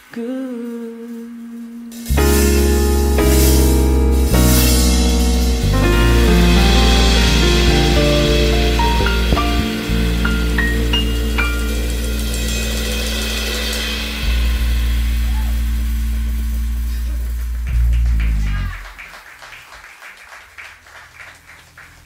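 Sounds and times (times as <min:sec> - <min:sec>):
cymbal wash: 0:01.8 - 0:17.7
jazz combo playing: 0:01.9 - 0:18.9
people clapping: 0:17.4 - 0:22.0.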